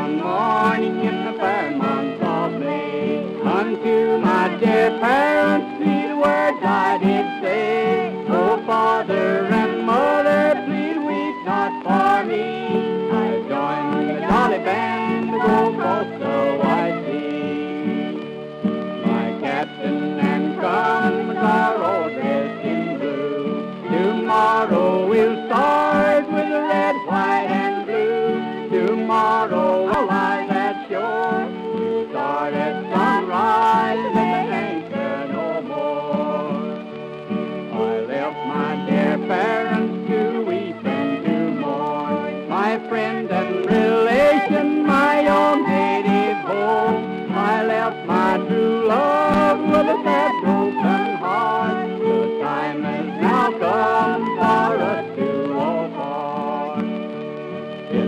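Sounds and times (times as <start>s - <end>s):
fiddle playing a quick tune: 0.0s - 58.0s.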